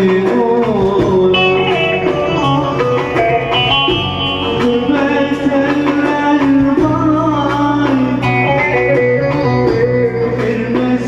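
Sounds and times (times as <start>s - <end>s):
electronic keyboard bass: 0.0s - 11.0s.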